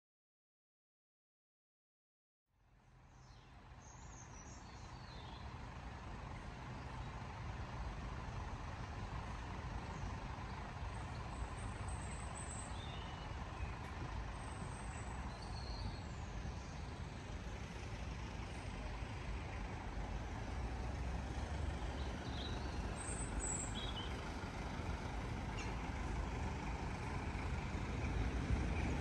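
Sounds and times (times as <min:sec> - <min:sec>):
bus engine idling: 0:02.6 - 0:29.0
faint bird chirps: 0:03.1 - 0:05.5, 0:14.4 - 0:17.0, 0:25.5 - 0:25.9.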